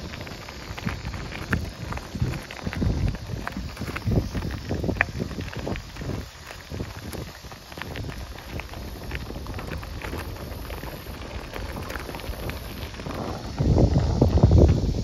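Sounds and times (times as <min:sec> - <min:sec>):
bicycle tyres crunching on gravel: 0:00.0 - 0:15.0
wind noise on microphone: 0:00.0 - 0:15.0.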